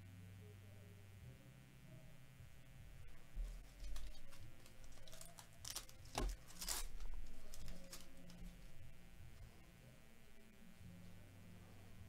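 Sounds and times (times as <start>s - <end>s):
handling of cards: 3.6s - 8.7s
foil wrapper crinkling: 3.8s - 8.5s.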